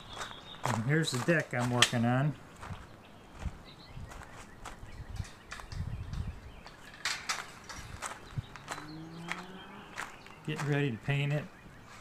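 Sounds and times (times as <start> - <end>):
footsteps on gravel: 0.0 - 5.7, 6.6 - 12.0.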